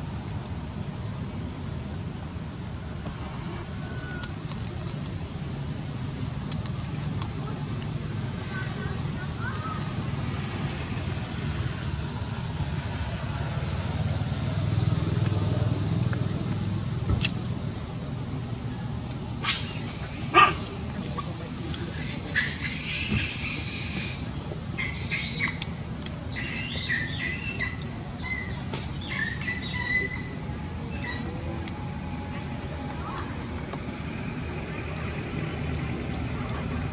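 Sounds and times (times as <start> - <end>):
monkey screeching calls: 19.4 - 25.6, 26.3 - 31.4.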